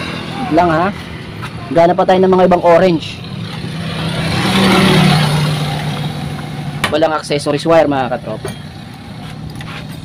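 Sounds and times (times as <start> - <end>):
vehicle passing by: 0.0 - 10.0.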